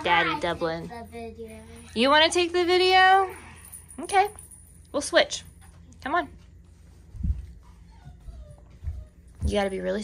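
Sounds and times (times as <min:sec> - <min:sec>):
puppy whining: 0:01.4 - 0:02.6, 0:07.4 - 0:09.5.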